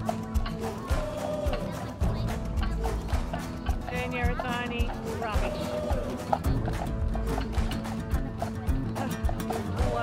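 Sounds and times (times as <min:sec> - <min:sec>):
music with a voice: 0:00.0 - 0:10.0.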